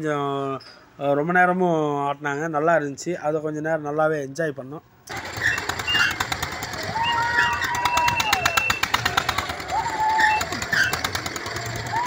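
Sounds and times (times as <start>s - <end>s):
fairground ride machinery clattering: 5.1s - 12.0s
riders screaming: 5.1s - 12.0s.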